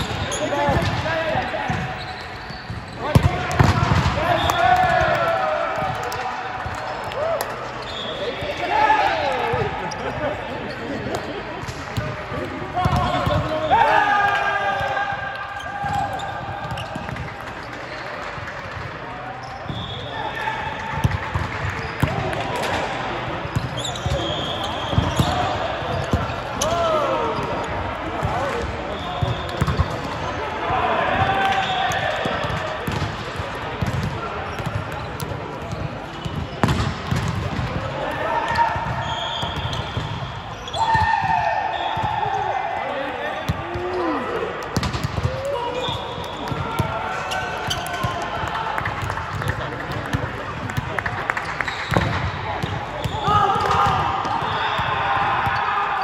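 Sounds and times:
sneakers squeaking on court: 0:00.0 - 0:05.0, 0:06.5 - 0:08.7, 0:09.5 - 0:13.9, 0:15.6 - 0:20.2, 0:20.8 - 0:30.4, 0:31.6 - 0:37.7, 0:38.5 - 0:42.7, 0:44.8 - 0:56.0
volleyballs hit and bouncing: 0:00.0 - 0:30.4, 0:31.0 - 0:56.0
players chattering: 0:00.0 - 0:56.0.

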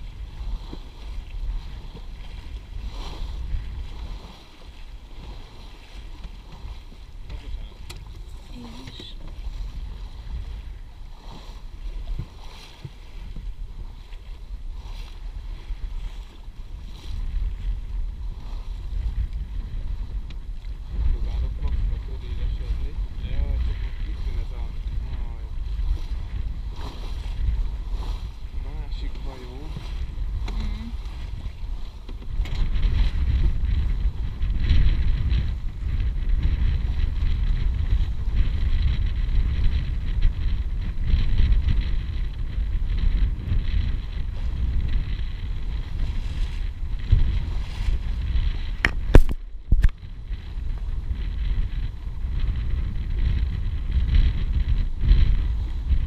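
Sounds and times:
water washing along hull: 0:00.0 - 0:56.0
wind buffeting microphone: 0:00.0 - 0:56.0.

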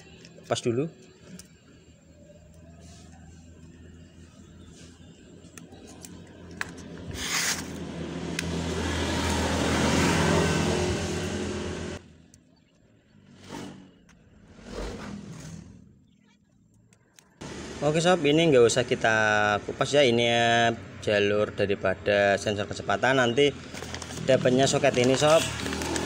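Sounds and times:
motor vehicle passing: 0:06.2 - 0:12.1, 0:13.2 - 0:16.0, 0:23.1 - 0:26.0.

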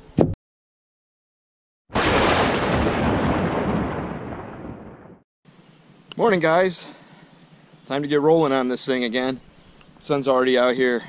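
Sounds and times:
boom hit with noisy rumble: 0:02.0 - 0:05.2.

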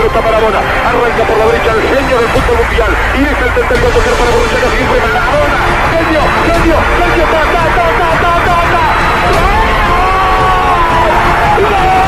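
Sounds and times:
commentator speaking excitedly: 0:00.0 - 0:12.0
stadium crowd noise: 0:00.0 - 0:12.0.

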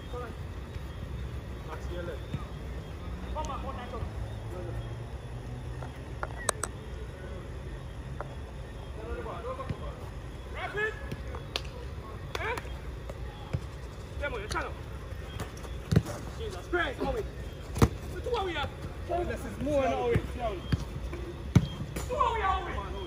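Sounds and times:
players shouting: 0:10.4 - 0:23.0
ball being kicked: 0:15.3 - 0:16.2, 0:21.5 - 0:22.1.

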